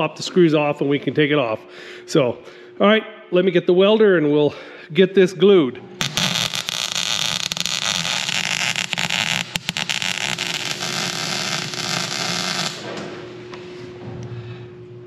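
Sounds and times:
faint hum: 0:00.0 - 0:15.0
welder arc crackling: 0:06.0 - 0:13.0.

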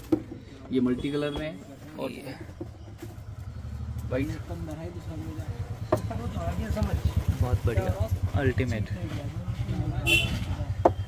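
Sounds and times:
engine idling: 0:03.2 - 0:11.0.

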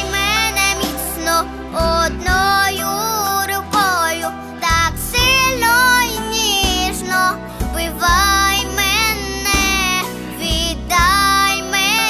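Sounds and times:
backing track with bass line: 0:00.0 - 0:12.0
girl singing into a microphone: 0:00.0 - 0:12.0.

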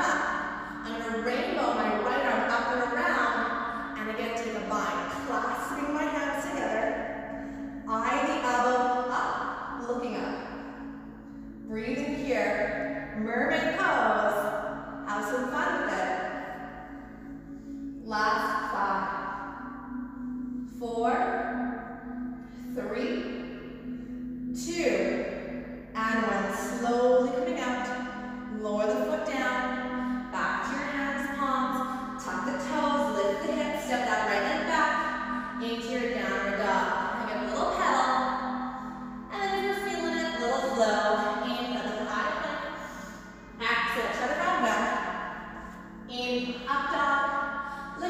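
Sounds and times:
woman speaking: 0:00.0 - 0:07.0, 0:07.8 - 0:10.5, 0:11.6 - 0:12.6, 0:13.2 - 0:14.5, 0:15.1 - 0:16.2, 0:18.0 - 0:19.4, 0:20.8 - 0:21.4, 0:22.8 - 0:23.2, 0:24.6 - 0:25.2, 0:26.0 - 0:38.6, 0:39.2 - 0:45.1, 0:46.0 - 0:48.0
woman talking: 0:00.0 - 0:07.0, 0:07.8 - 0:10.4, 0:11.6 - 0:12.6, 0:13.2 - 0:14.5, 0:15.1 - 0:16.2, 0:18.0 - 0:19.4, 0:20.8 - 0:21.4, 0:22.8 - 0:23.2, 0:24.6 - 0:25.2, 0:26.0 - 0:38.5, 0:39.3 - 0:45.1, 0:46.0 - 0:48.0
soft background music: 0:00.0 - 0:48.0.

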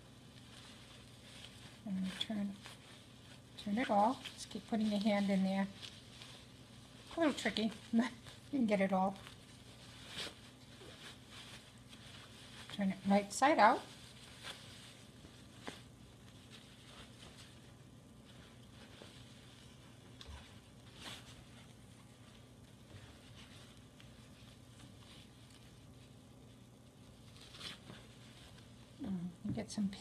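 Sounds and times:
cloth rustling: 0:00.0 - 0:29.0
low room hum: 0:00.0 - 0:30.0.

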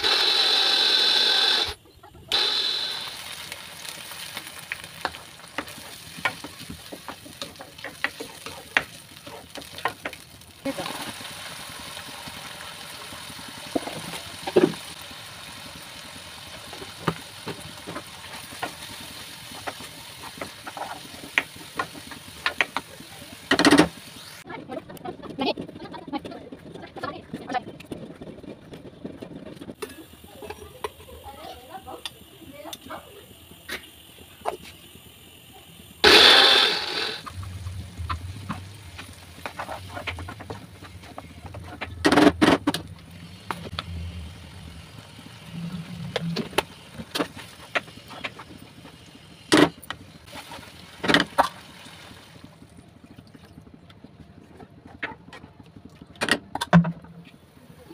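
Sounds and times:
oil sizzling: 0:00.0 - 0:24.5, 0:29.8 - 0:52.9
spatula scraping and tapping pan: 0:05.0 - 0:10.2, 0:38.1 - 0:42.7
low hum: 0:37.2 - 0:47.0.

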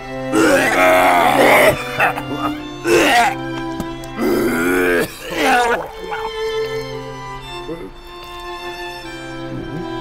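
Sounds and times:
background music: 0:00.0 - 0:10.0
man grunting and groaning: 0:00.3 - 0:03.4, 0:04.2 - 0:06.5.

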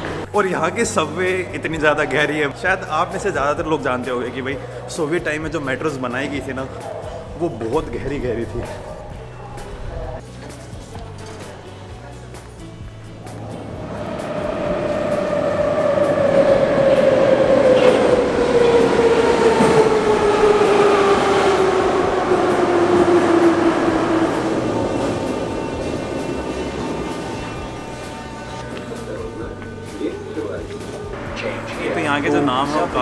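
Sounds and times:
train rumble: 0:12.6 - 0:33.0.

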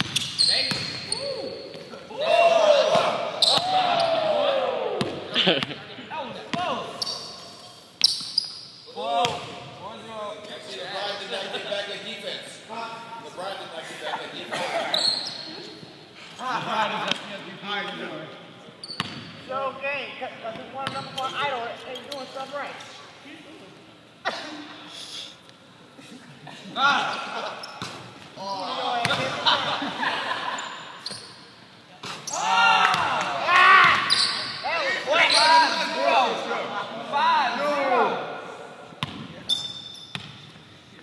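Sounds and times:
basketball bouncing on gym floor: 0:00.0 - 0:01.1, 0:39.0 - 0:39.4
sneakers squealing on floor: 0:00.0 - 0:02.0, 0:02.9 - 0:04.3, 0:06.5 - 0:09.6, 0:14.8 - 0:15.5, 0:18.8 - 0:19.5, 0:20.8 - 0:22.4, 0:30.6 - 0:33.0, 0:33.8 - 0:36.0, 0:39.0 - 0:40.6.

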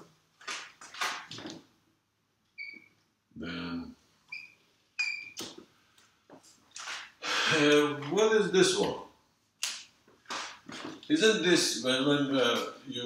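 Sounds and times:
marker squeaking on whiteboard: 0:02.6 - 0:03.0, 0:04.3 - 0:05.6, 0:10.3 - 0:11.0.

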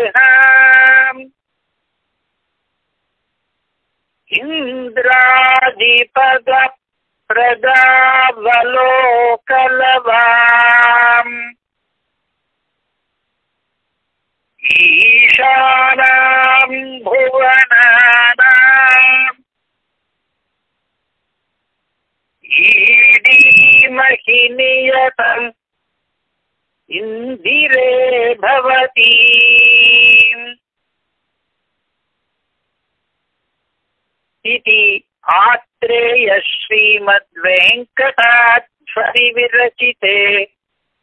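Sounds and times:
man chanting a hymn: 0:00.0 - 0:01.3, 0:04.3 - 0:11.6, 0:14.6 - 0:19.4, 0:22.5 - 0:25.6, 0:26.9 - 0:30.6, 0:34.5 - 0:40.6.

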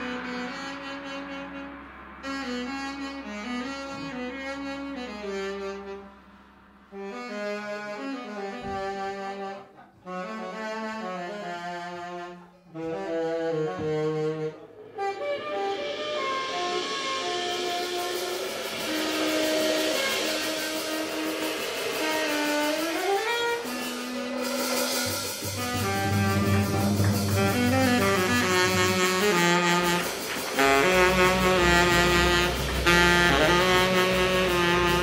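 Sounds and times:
tenor saxophone long notes: 0:00.0 - 0:06.2, 0:06.9 - 0:35.0
cymbals washing: 0:14.0 - 0:35.0
low rumble: 0:25.0 - 0:35.0
tenor saxophone low note: 0:25.0 - 0:35.0.

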